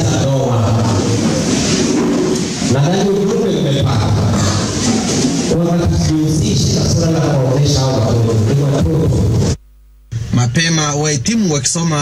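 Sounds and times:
man speaking into microphone: 0.0 - 1.4, 2.6 - 4.8, 5.4 - 9.6, 10.3 - 12.0.

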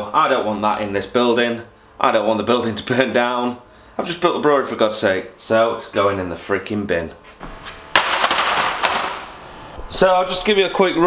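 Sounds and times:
vacuum cleaner crashing on floor: 7.9 - 9.4.

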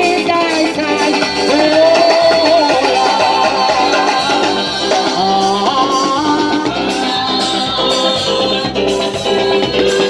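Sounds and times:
live band playing: 0.0 - 10.0
voices singing: 0.0 - 10.0.

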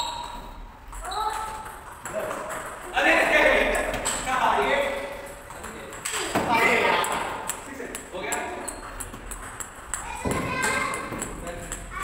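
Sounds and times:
table tennis ball clicking: 7.0 - 11.9.

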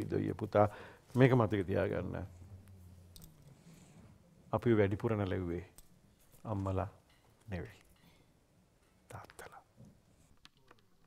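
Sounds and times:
man's soft voice sounds: 0.0 - 3.2, 6.4 - 8.0, 9.0 - 10.3.

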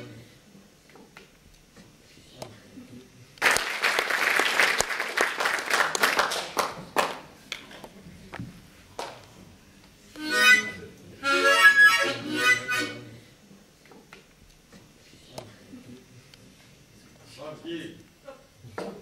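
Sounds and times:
harmonica chords: 0.0 - 0.2, 10.2 - 13.2
audience applauding: 3.4 - 7.7.

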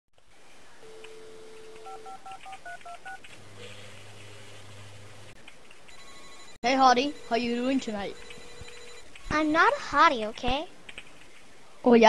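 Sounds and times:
telephone dial tone: 0.9 - 3.1.

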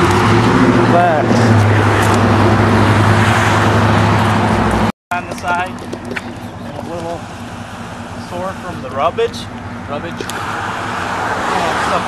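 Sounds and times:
cars driving past: 0.0 - 12.0
low engine hum: 0.0 - 12.0.

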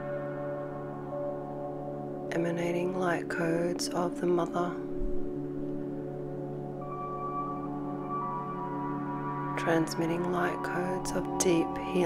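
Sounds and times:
slow ambient music: 0.0 - 12.0.

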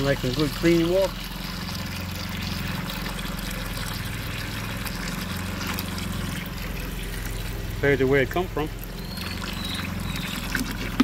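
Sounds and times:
water pouring into plastic tub: 0.0 - 11.0.

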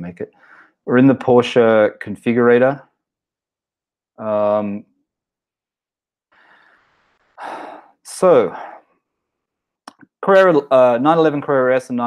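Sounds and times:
man breathing: 0.3 - 0.8, 6.3 - 8.8.

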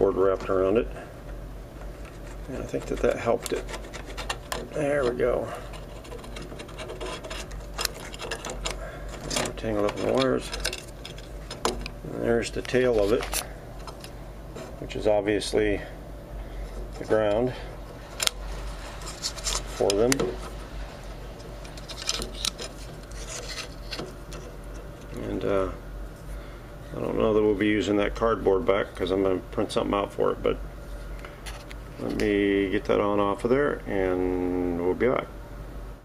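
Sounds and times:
hands rubbing cardboard: 1.8 - 8.7
metal and cardboard clicks and scrapes: 1.9 - 12.0, 18.1 - 20.6, 21.6 - 25.1.

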